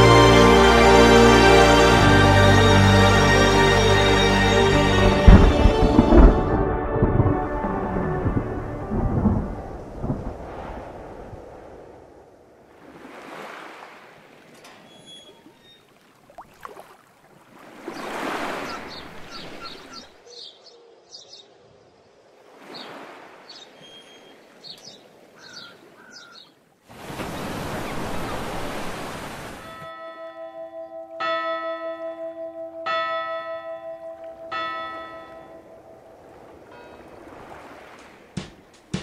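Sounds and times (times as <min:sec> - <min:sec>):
sea swells washing: 0:04.6 - 0:14.6, 0:15.9 - 0:20.0, 0:26.9 - 0:29.8, 0:35.4 - 0:38.9
surf breaking: 0:04.6 - 0:14.6, 0:36.2 - 0:39.0
large bell tolling: 0:29.7 - 0:37.2.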